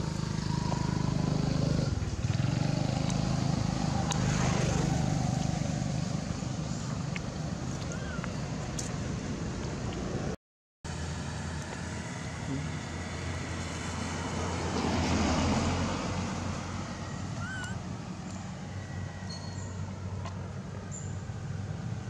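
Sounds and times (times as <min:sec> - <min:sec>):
vehicle passing: 0:00.0 - 0:10.3, 0:10.9 - 0:22.0
road traffic hum: 0:00.0 - 0:22.0.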